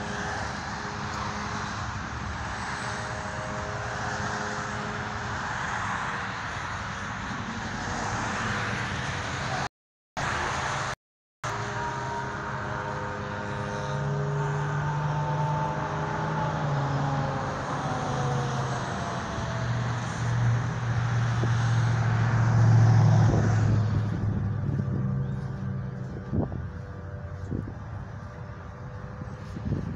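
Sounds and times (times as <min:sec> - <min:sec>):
vehicle engine droning: 0:00.0 - 0:29.9.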